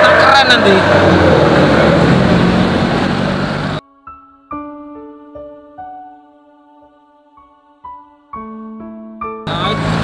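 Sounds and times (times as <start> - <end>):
street traffic: 0.0 - 3.8, 9.5 - 10.0
vehicle engine running: 0.0 - 3.8, 9.5 - 10.0.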